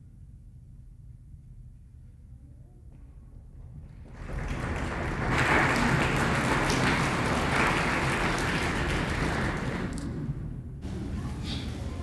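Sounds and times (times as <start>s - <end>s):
congregation applauding: 4.0s - 10.3s.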